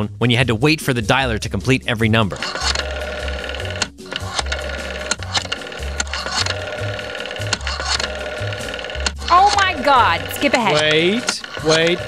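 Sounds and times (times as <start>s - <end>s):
rotary telephone dial clicking: 2.4s - 12.0s.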